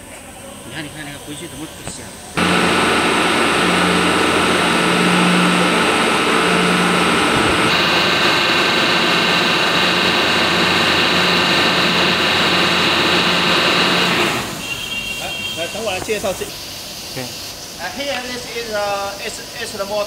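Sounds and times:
electric motor whining: 2.4 - 14.6
higher tone: 2.4 - 14.6.

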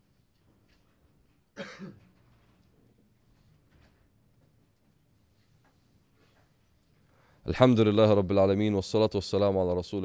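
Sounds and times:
person coughing: 1.6 - 2.2.

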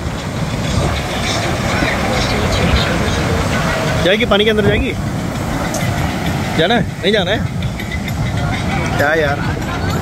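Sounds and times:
sea surf breaking on beach: 0.0 - 10.0
wind buffeting microphone: 0.0 - 10.0
faint voices of people: 5.8 - 10.0.

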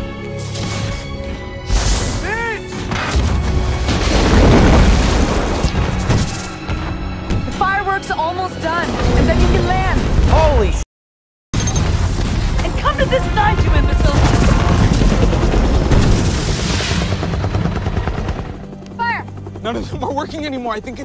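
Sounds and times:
dramatic film music: 0.0 - 10.8, 11.6 - 21.0.

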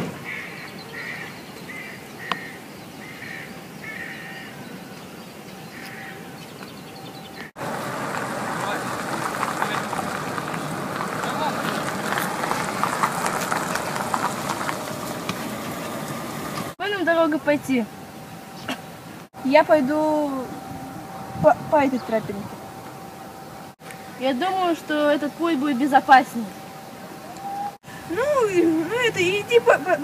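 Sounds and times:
footsteps on asphalt: 6.6 - 16.8
people walking: 7.5 - 16.8
faint voices: 8.1 - 17.9.

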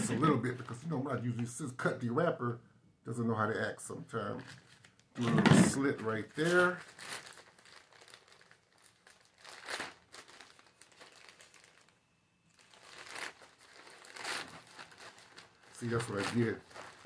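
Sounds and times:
plastic packaging crinkling: 4.3 - 17.0.

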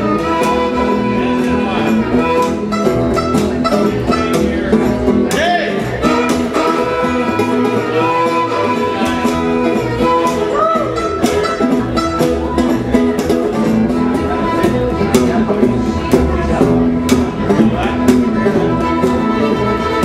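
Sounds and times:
fiddle lead melody: 0.0 - 20.0
plucked upright bass: 0.0 - 20.0
strummed acoustic guitar: 0.0 - 20.0.

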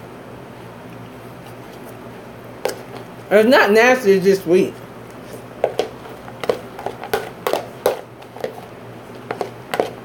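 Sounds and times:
person chewing crunchy cereal: 5.2 - 10.0.

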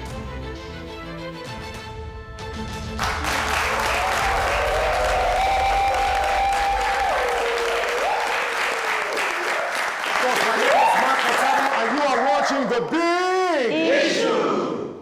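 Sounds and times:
studio audience applauding: 2.9 - 12.8
man's voice: 10.2 - 13.8.

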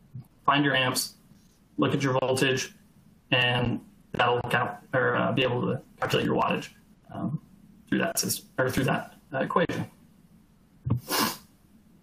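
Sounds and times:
man's sharp breath: 11.0 - 11.5.

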